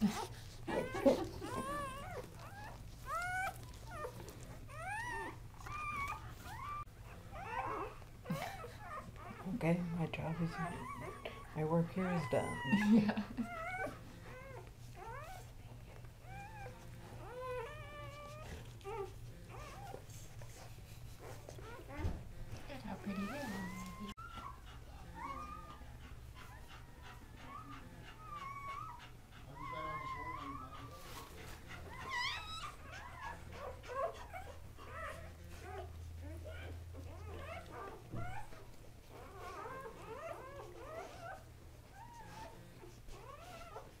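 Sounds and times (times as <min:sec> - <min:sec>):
puppies squeaking and whimpering: 0:00.0 - 0:44.0.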